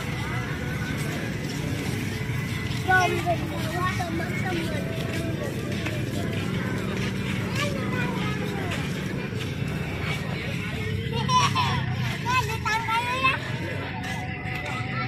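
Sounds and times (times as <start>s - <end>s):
motorcycle engines humming: 0.0s - 15.0s
music: 0.0s - 15.0s
people's voices: 0.0s - 15.0s.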